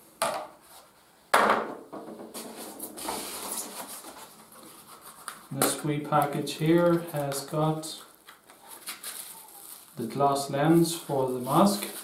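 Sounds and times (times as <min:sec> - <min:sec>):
plastic mask knocking on table: 0:01.3 - 0:02.4
packaging rustling: 0:06.2 - 0:12.0.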